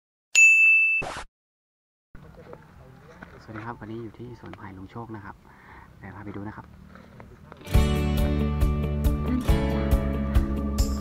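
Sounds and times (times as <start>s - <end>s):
bright ding: 0.4s - 1.0s.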